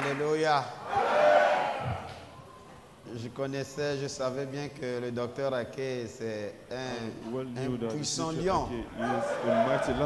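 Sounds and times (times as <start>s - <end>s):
congregation calling out: 0.0s - 2.6s, 8.8s - 10.0s.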